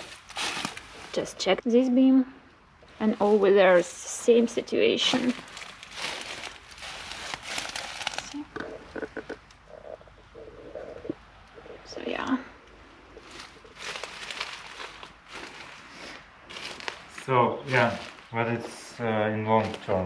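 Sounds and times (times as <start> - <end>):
straw and hay rustling: 0.0 - 1.9, 2.8 - 20.0.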